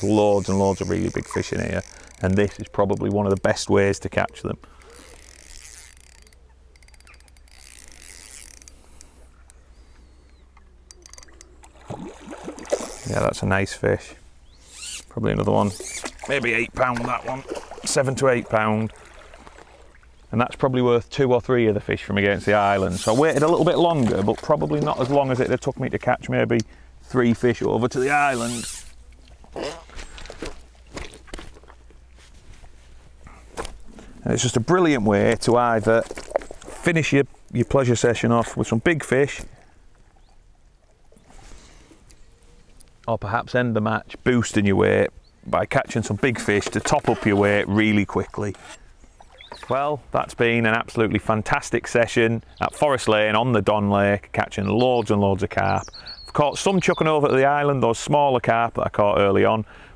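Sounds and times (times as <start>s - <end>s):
fishing reel ratcheting: 0.4s - 3.5s, 4.7s - 9.2s, 10.8s - 11.6s, 12.7s - 13.2s, 14.7s - 15.1s, 28.0s - 29.0s.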